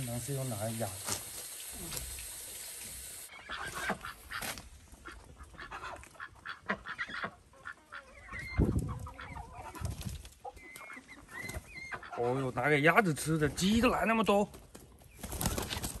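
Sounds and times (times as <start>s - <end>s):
ducks quacking: 3.3s - 12.9s
chickens clucking: 3.3s - 13.0s.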